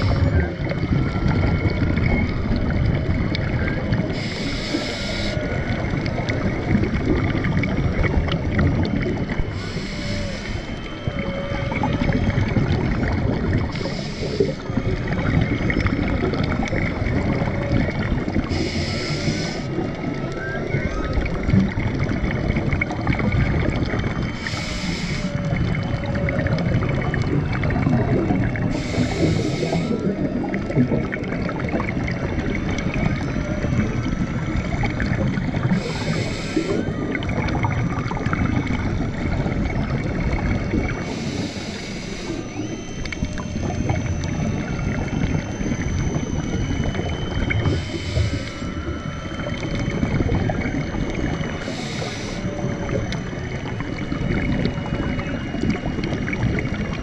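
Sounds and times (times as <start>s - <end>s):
exhaled bubbles hissing: 0.0s - 57.0s
faint whale song: 0.0s - 57.0s
scuba regulator breathing: 4.1s - 6.0s, 9.4s - 11.0s, 13.6s - 14.8s, 18.4s - 19.9s, 24.3s - 25.6s, 28.6s - 30.2s, 35.6s - 37.1s, 41.0s - 42.9s, 47.6s - 48.9s, 51.5s - 53.1s
reef crackle: 8.8s - 21.6s, 22.8s - 44.8s, 46.8s - 53.7s.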